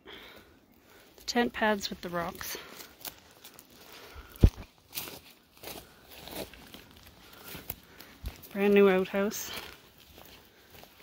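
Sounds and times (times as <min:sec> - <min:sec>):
footsteps: 0:00.4 - 0:11.0.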